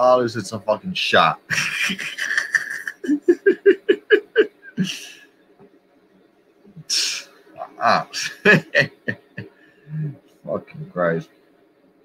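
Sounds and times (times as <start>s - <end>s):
man laughing: 1.4s - 5.2s, 6.9s - 10.2s
short voiced ah: 6.9s - 8.9s.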